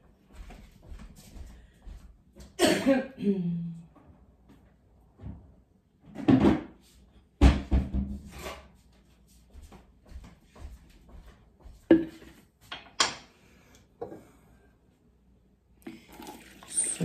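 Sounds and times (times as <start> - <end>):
kitchen cupboards knocking: 7.4 - 8.2.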